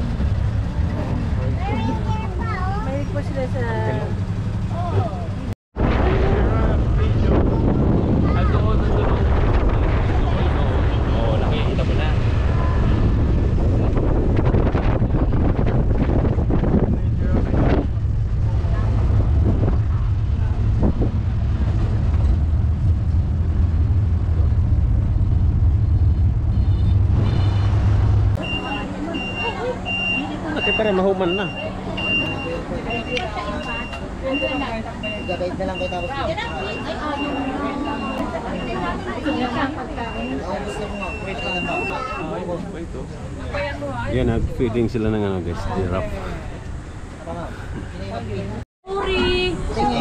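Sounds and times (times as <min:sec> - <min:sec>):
tram rumbling: 0:00.0 - 0:50.0
people chatting: 0:00.8 - 0:05.5, 0:06.1 - 0:12.8, 0:28.4 - 0:46.6, 0:47.2 - 0:50.0
high electronic beeps: 0:28.4 - 0:42.0.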